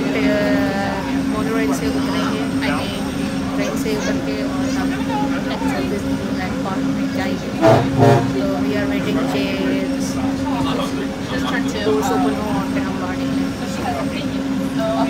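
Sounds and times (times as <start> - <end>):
bus engine hum: 0.0 - 15.0
passengers talking: 0.0 - 15.0
short loud sounds: 7.6 - 8.4.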